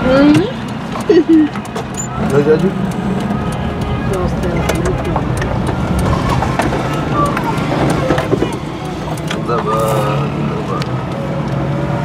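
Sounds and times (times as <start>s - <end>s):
voices: 0.0s - 10.9s
road noise: 0.0s - 12.0s
vehicle engine running: 0.0s - 12.0s.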